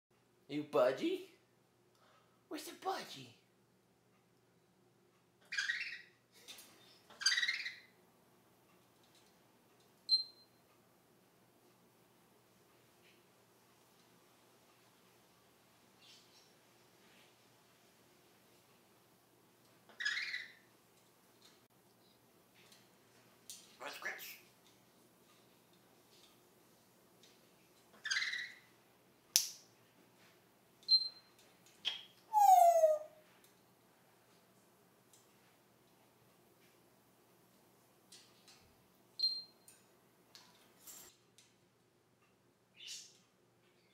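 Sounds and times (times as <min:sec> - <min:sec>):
parrot squawking: 0:05.5 - 0:06.1, 0:07.1 - 0:07.9, 0:19.9 - 0:20.6, 0:23.8 - 0:24.4, 0:28.0 - 0:28.6, 0:32.3 - 0:33.2
faint parrot call: 0:32.3 - 0:33.2.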